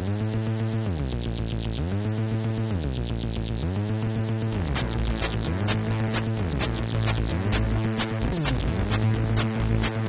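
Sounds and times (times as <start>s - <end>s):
fast high ticking hits: 4.6s - 10.0s.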